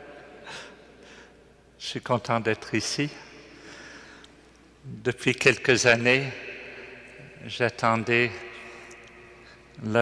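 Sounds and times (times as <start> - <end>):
man breathing in: 0.4 - 1.4, 3.5 - 4.4
man speaking: 1.8 - 3.3, 4.8 - 6.4, 7.2 - 8.9, 9.8 - 10.0.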